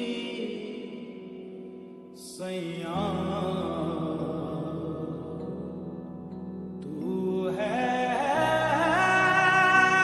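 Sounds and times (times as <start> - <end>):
slowed reverb-heavy song vocals: 0.0 - 10.0.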